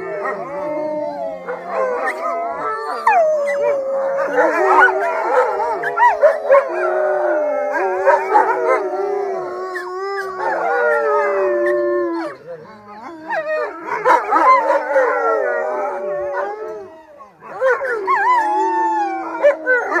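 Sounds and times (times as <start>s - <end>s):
wolves howling in chorus: 0.0s - 20.0s.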